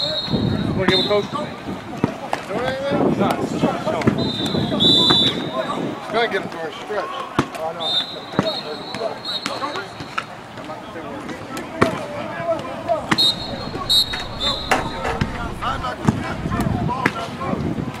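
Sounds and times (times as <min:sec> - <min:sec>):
short high whistle tones: 0:12.9 - 0:16.5.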